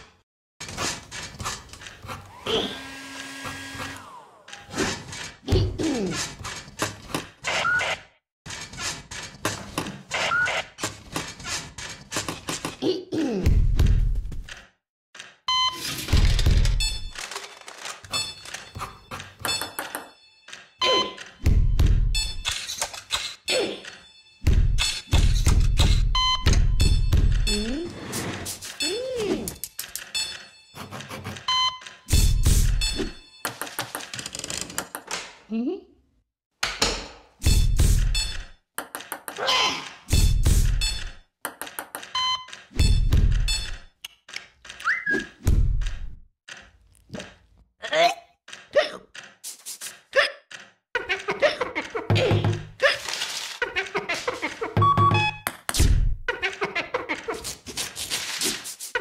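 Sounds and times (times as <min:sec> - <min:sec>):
hospital equipment beeps: 0:15.5 - 0:16.0, 0:18.1 - 0:21.3, 0:25.9 - 0:27.7, 0:29.7 - 0:33.5, 0:42.2 - 0:43.8, 0:54.8 - 0:55.4
rapid clicks and knocks: 0:33.4 - 0:35.3.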